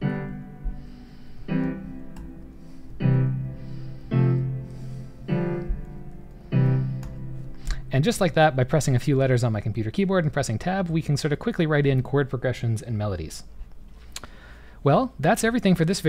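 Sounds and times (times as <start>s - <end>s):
piano chords: 0.0s - 9.5s.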